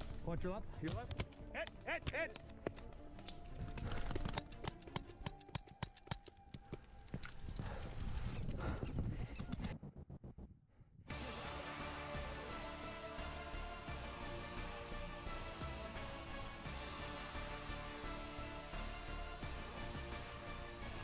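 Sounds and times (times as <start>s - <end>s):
background music: 0.0s - 8.4s, 11.1s - 21.0s.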